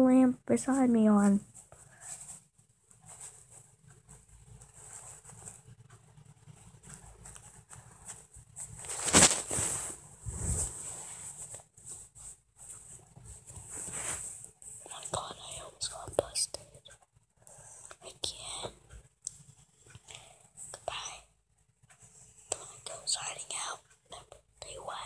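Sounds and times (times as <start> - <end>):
handling rustle: 6.6 - 14.5
person whispering: 14.8 - 16.9, 17.8 - 18.8, 20.7 - 21.3, 22.5 - 25.0.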